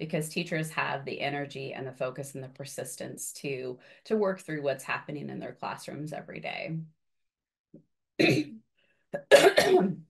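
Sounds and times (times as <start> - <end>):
woman clearing her throat: 8.2 - 8.6, 9.2 - 10.0.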